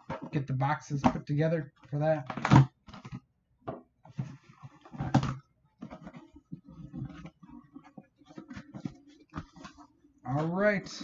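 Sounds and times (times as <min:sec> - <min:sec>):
cardboard box rustling and scraping: 0:04.1 - 0:10.0.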